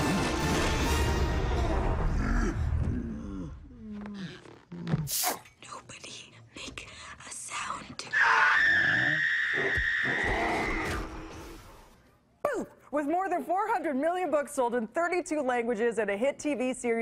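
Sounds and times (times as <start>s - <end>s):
whispered dialogue: 5.1s - 8.1s.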